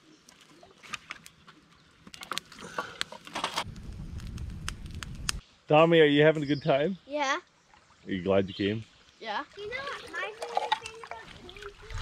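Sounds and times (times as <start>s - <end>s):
fire crackling and popping: 0.2s - 5.4s.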